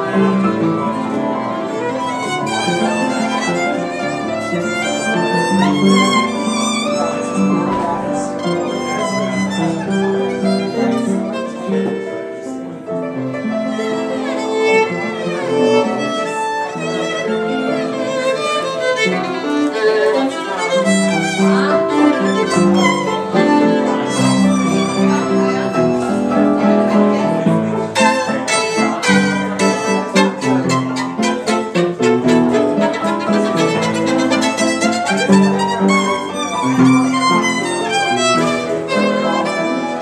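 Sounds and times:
bowed violin melody: 0.0s - 40.0s.

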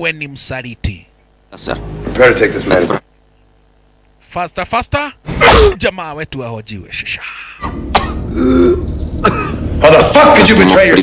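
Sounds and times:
man coughing and grunting: 5.4s - 5.8s, 7.6s - 10.1s.

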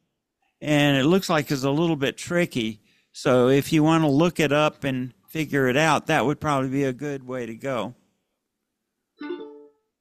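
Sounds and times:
ukulele chord strummed: 9.2s - 9.9s.

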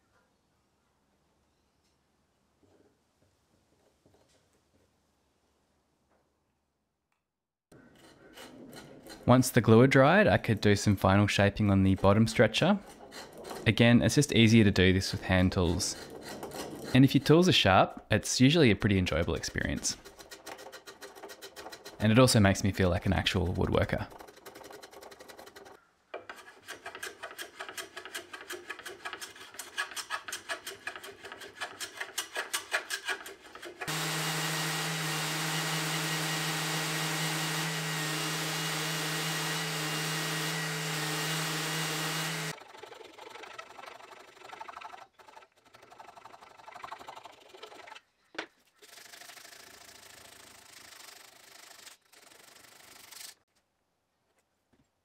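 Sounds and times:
spokeshave shaving wood: 7.7s - 17.6s, 18.8s - 48.0s, 48.8s - 53.4s
scraping and rubbing: 7.7s - 18.0s, 19.1s - 34.0s, 39.5s - 53.5s
orbital sander running: 33.9s - 42.5s.

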